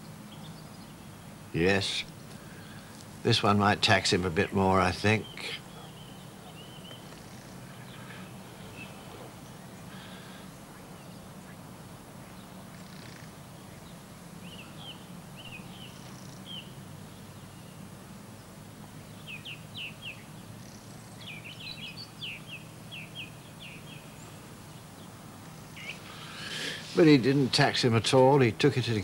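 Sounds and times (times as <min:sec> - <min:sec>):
birds chirping: 0:00.0 - 0:29.0
steady low hum: 0:00.0 - 0:29.0.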